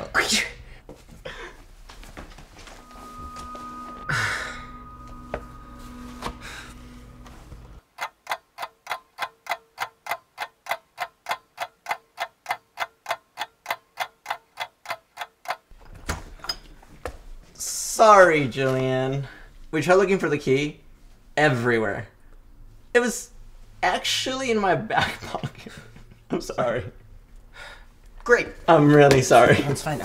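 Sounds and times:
clock ticking fast: 0:07.8 - 0:15.7.

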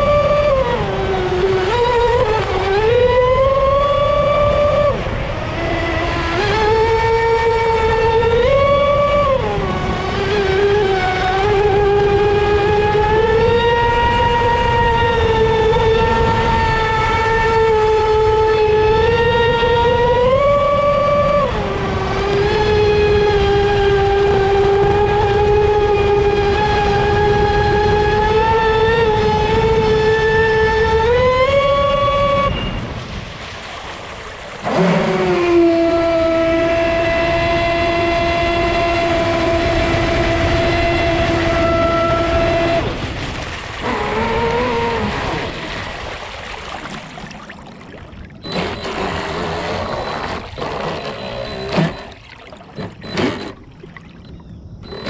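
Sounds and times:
electric motor high whine: 0:00.0 - 0:32.8, 0:34.6 - 0:46.3, 0:48.4 - 0:55.0
water rushing under hull: 0:00.0 - 0:55.0
water splashing against hull: 0:00.0 - 0:55.0.

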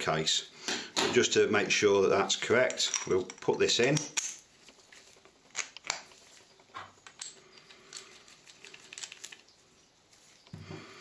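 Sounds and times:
clicks and taps of metal parts: 0:02.5 - 0:04.4.

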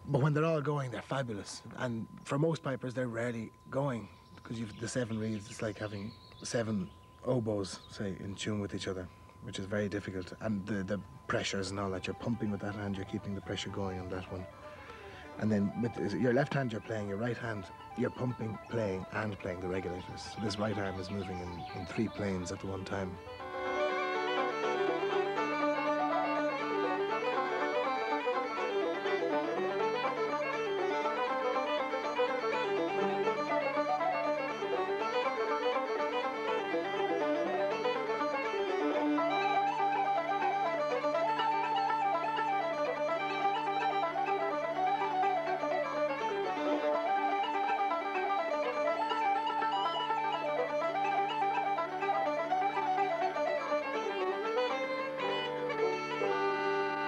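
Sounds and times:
uilleann pipes playing a tune: 0:00.0 - 0:57.0.

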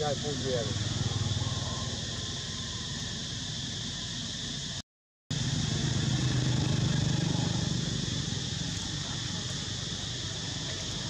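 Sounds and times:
vehicle engine humming: 0:00.0 - 0:04.7, 0:05.3 - 0:11.0
steady high hiss: 0:05.4 - 0:11.0.

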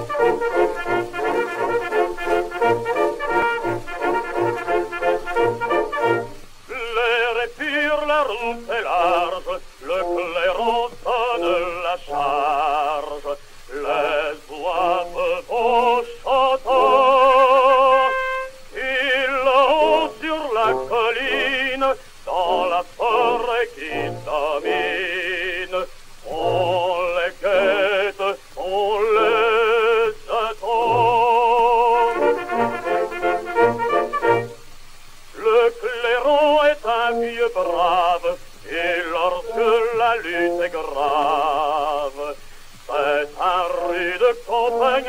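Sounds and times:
man singing operatically: 0:00.0 - 0:34.6, 0:35.3 - 0:45.0.

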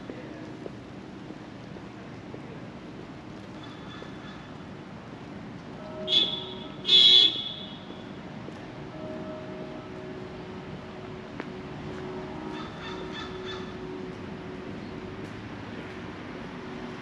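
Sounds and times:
outdoor background hum: 0:00.0 - 0:17.0
car horn honking: 0:05.9 - 0:08.0.

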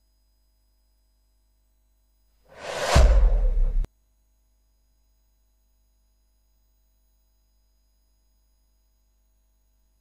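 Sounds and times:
whoosh into booming bass: 0:02.6 - 0:03.9.

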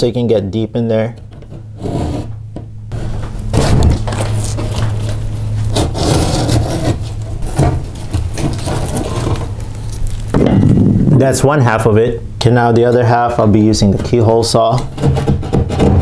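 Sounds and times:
steady low hum: 0:00.0 - 0:16.0
utility knife cutting drywall: 0:03.0 - 0:04.8, 0:05.7 - 0:09.6, 0:14.8 - 0:16.0.

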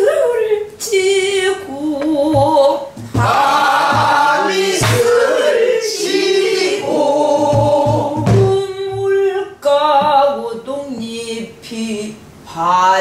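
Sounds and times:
barrel drum thumps: 0:02.0 - 0:05.4, 0:07.3 - 0:09.3, 0:10.0 - 0:10.3
person singing slow folk song: 0:06.8 - 0:13.0.

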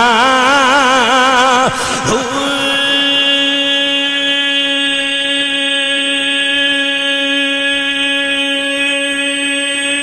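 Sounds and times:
man singing long note over loudspeakers: 0:00.0 - 0:10.0.

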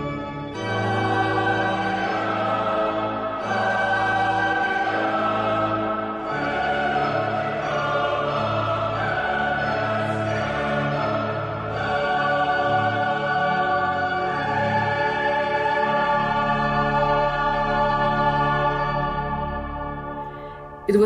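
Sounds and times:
choir singing: 0:00.0 - 0:21.0.

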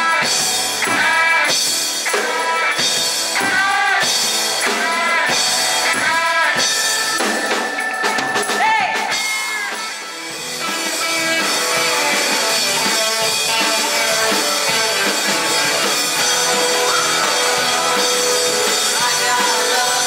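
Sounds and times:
lead vocal singing: 0:00.0 - 0:09.8, 0:11.8 - 0:20.0
rock band playing: 0:00.0 - 0:20.0.

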